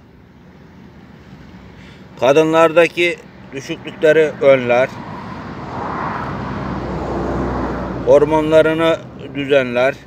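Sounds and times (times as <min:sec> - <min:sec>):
motor vehicle rumbling: 0:00.0 - 0:10.0.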